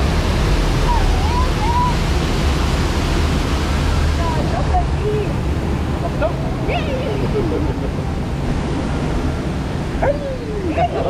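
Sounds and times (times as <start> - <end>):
waterfall rushing: 0.0 - 11.0
people calling out: 10.0 - 11.0.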